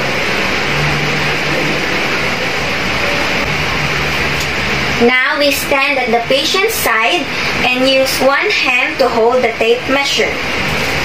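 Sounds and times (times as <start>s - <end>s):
whooshing room noise: 0.0s - 11.0s.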